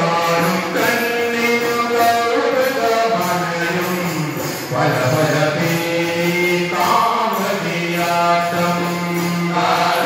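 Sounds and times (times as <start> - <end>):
group singing devotional song: 4.5 - 10.0.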